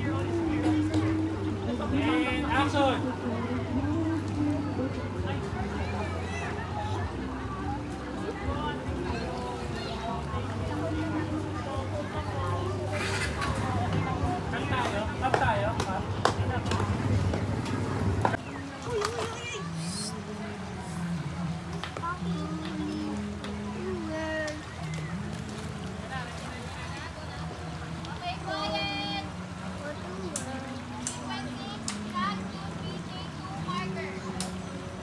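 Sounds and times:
children calling and chattering: 0.0s - 35.0s
people talking: 0.0s - 35.0s
water splashes: 0.0s - 35.0s.

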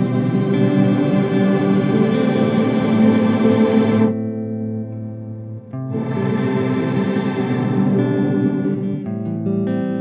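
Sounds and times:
electric guitar chord with reverb: 0.0s - 10.0s.

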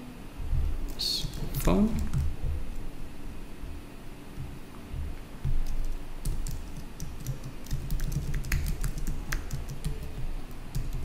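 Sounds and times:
keyboard keystroke clicks: 0.9s - 2.4s.

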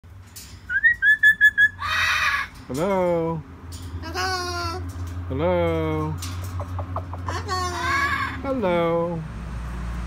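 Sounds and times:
cockatoo whistling: 0.7s - 1.9s
cockatoo harsh call: 1.6s - 2.5s.

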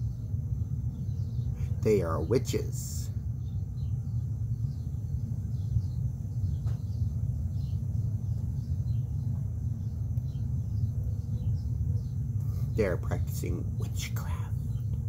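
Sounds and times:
faint bird chirps: 0.0s - 15.0s
low outdoor rumble: 0.0s - 15.0s.

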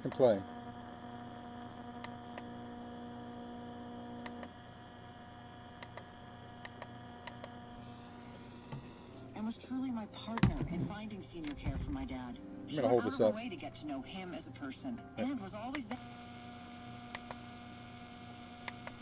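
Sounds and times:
speaker hum: 0.0s - 19.0s.

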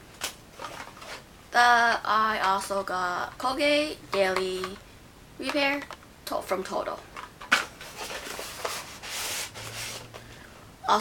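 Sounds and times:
packaging rustling: 0.2s - 1.2s, 7.1s - 10.2s.

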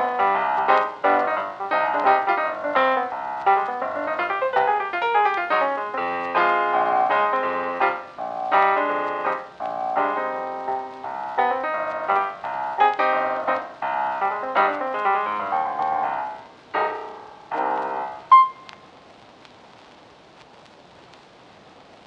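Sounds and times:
piano music: 0.0s - 18.8s.

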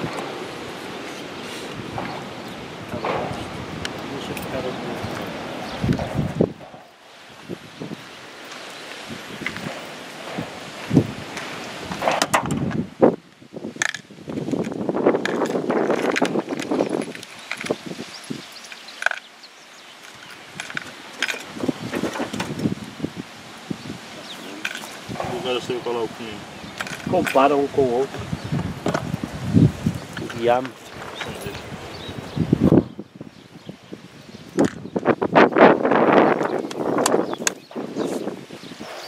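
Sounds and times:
rustling noise: 0.0s - 32.9s, 34.5s - 39.0s.

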